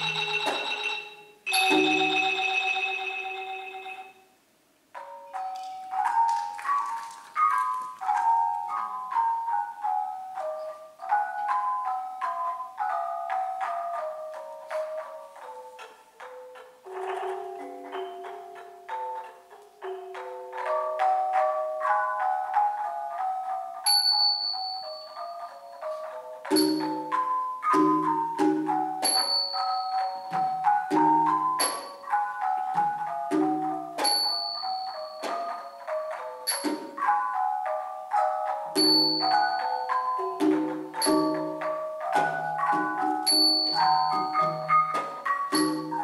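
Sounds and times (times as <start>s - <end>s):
small cup cymbals ringing: 0.0s - 4.2s, 23.8s - 28.2s, 29.0s - 30.8s, 34.0s - 37.0s, 38.8s - 41.8s, 43.2s - 46.0s
xylophone rolled notes: 0.0s - 4.3s, 5.0s - 46.0s.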